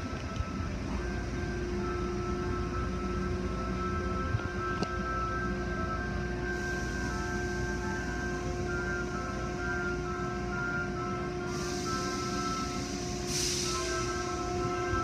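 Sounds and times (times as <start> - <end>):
music with sustained notes: 0.0 - 15.0.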